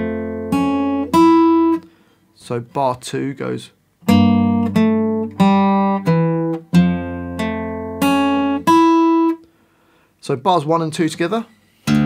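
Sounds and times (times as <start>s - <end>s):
fingerpicked acoustic guitar: 0.0s - 2.2s, 4.0s - 9.6s, 11.5s - 12.0s.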